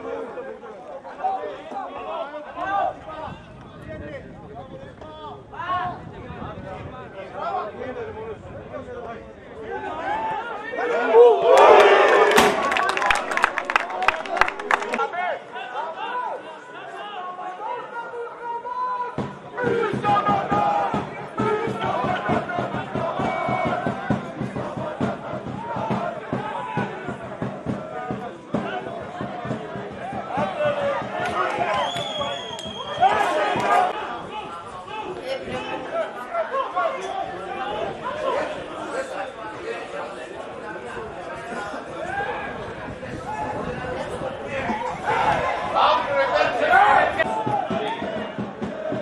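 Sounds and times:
crowd noise burst: 0:05.3 - 0:49.0
spectators and players shouting: 0:09.6 - 0:49.0.

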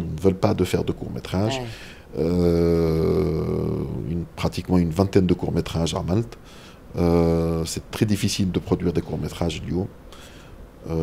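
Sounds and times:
man's drawn-out hesitation sound: 0:01.3 - 0:01.9.

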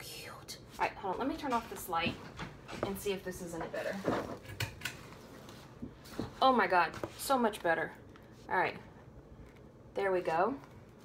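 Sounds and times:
rustling at desk: 0:00.8 - 0:08.5.

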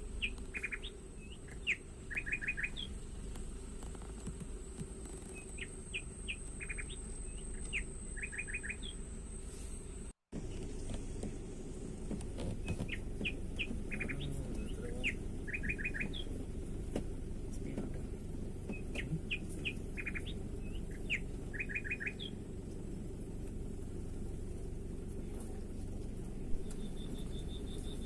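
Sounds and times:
car rumbling on dirt track: 0:00.0 - 0:28.0
songbird singing: 0:00.0 - 0:28.0.

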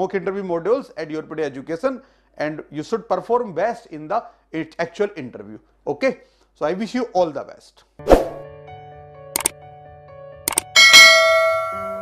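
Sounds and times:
soft background music: 0:08.0 - 0:12.0
quick clicks: 0:10.5 - 0:10.7
bell-like notification chime: 0:10.8 - 0:12.0.

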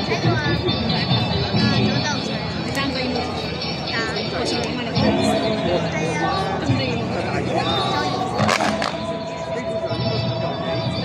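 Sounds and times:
background music: 0:00.0 - 0:11.0
chatter: 0:00.0 - 0:11.0.

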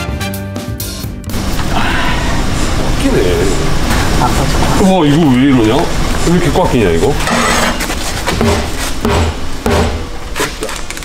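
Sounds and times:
tyre-changing machine grinding: 0:04.9 - 0:09.0.

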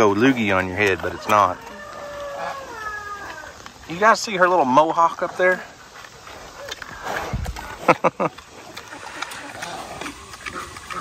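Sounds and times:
pig grunting and snuffling: 0:00.0 - 0:11.0
pig snorting: 0:04.8 - 0:11.0.

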